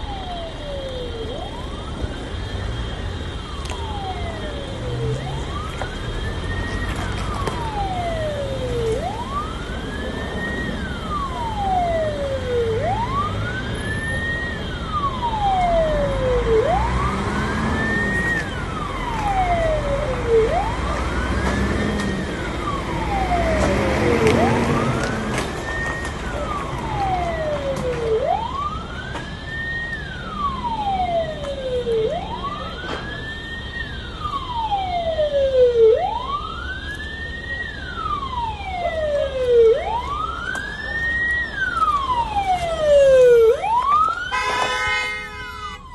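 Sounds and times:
emergency vehicle siren wailing: 0.0 - 45.9.

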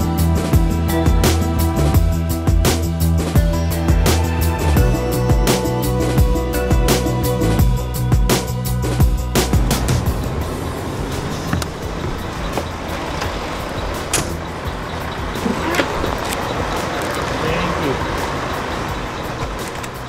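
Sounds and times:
bus engine running: 0.0 - 20.0
people's voices: 15.4 - 18.4.

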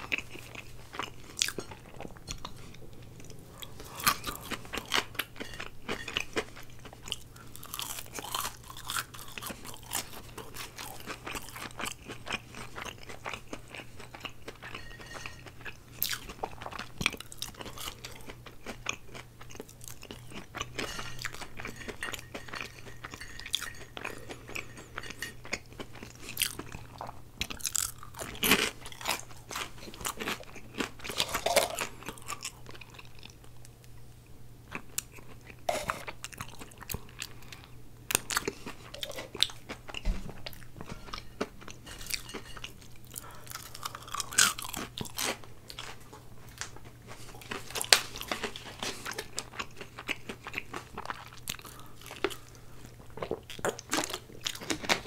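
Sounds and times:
crunchy chewing: 0.0 - 33.7, 34.7 - 55.0
steady low hum: 0.0 - 49.2.

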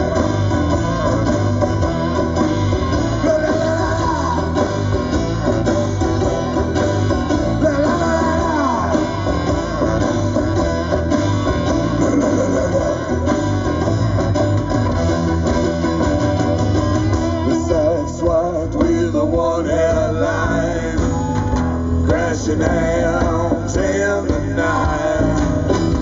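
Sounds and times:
live band playing: 0.0 - 26.0.

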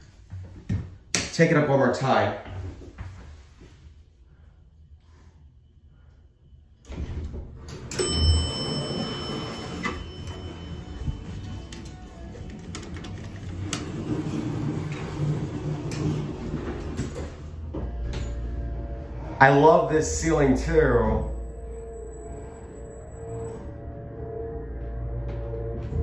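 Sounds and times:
elevator door moving: 6.8 - 26.0
elevator chime: 7.8 - 12.6, 19.6 - 25.1.

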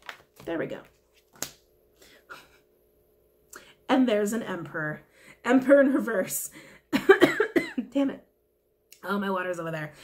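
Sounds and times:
cards rustling: 0.0 - 1.7
card snapping from deck: 1.3 - 1.7.

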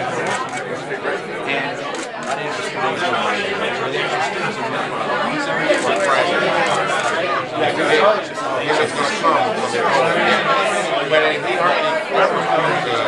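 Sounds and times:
crowd chatter: 0.0 - 13.0
men talking closely: 0.0 - 13.0.

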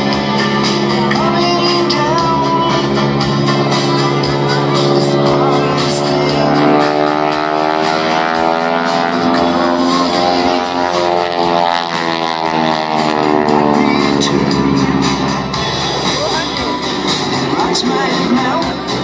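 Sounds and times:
music playing: 0.0 - 19.0
propeller plane engine droning: 0.0 - 19.0.

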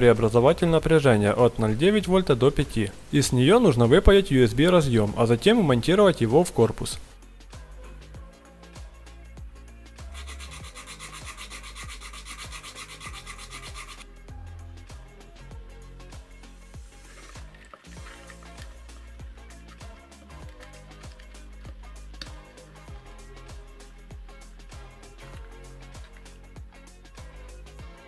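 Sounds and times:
background music with beat: 4.2 - 28.0.

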